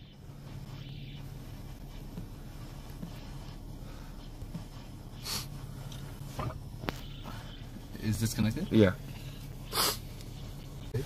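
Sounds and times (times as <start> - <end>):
low background hum: 0.0 - 11.0
person sneezing: 9.7 - 10.0.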